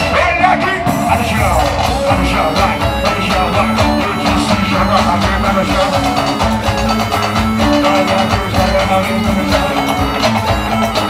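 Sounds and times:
drum kit beat: 0.0 - 11.0
guitar: 0.0 - 11.0
percussion drums: 0.0 - 11.0.

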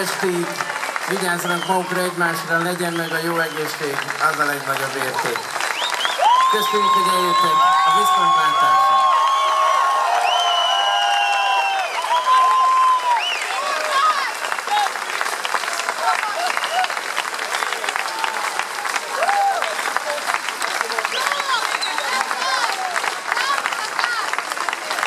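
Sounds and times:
audience applauding: 0.0 - 25.0
crowd cheering and whooping: 5.2 - 20.2, 20.8 - 24.4.

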